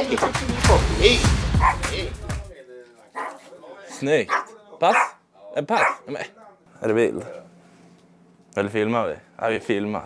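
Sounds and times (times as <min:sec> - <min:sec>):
background music: 0:00.0 - 0:02.5
voices: 0:00.0 - 0:06.6.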